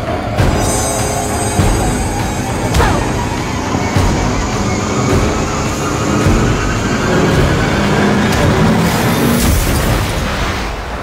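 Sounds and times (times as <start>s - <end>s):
dense low rumble: 0.1s - 10.9s
sharp hits: 0.2s - 10.5s.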